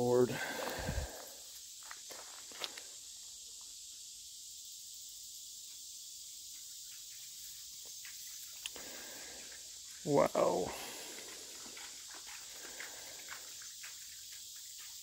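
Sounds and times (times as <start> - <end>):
faint high hiss: 7.3 - 11.6.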